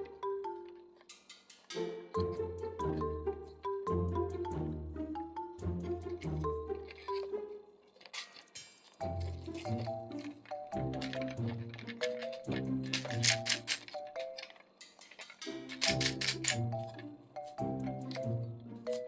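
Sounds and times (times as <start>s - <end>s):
bouncy music with a beat: 2.3s - 6.4s, 17.6s - 18.4s.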